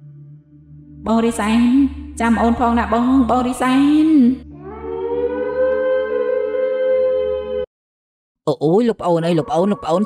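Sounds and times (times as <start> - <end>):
long wailing tone: 2.4 - 7.7.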